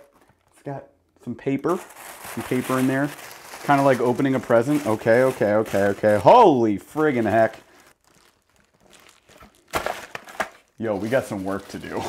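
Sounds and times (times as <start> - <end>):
packing paper crinkling: 1.6 - 12.0.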